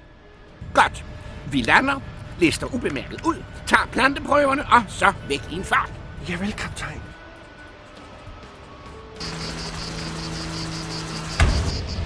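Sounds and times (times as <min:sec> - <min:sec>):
low rumble: 0:00.0 - 0:07.3
steady hum: 0:00.0 - 0:08.6
pulsing high chirring: 0:09.1 - 0:12.0.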